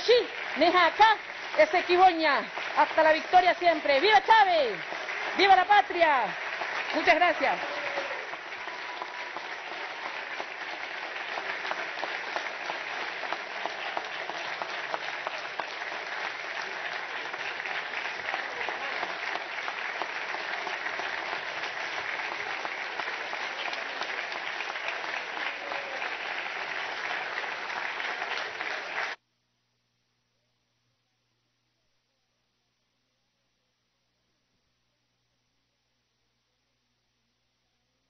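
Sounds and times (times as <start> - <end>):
large group applauding: 0.0 - 29.2.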